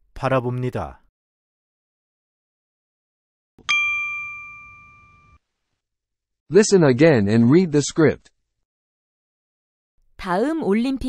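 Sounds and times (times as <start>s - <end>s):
bell-like chime ringing: 3.6s - 5.4s.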